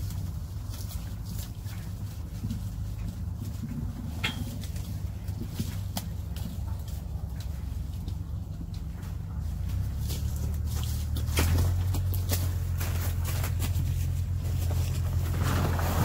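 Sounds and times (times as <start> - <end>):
leaves and branches rustling: 0.0 - 16.0
steady low rumble: 0.0 - 16.0
stems snapping: 4.2 - 8.9, 9.7 - 14.0
fruit going into a bag: 10.6 - 16.0.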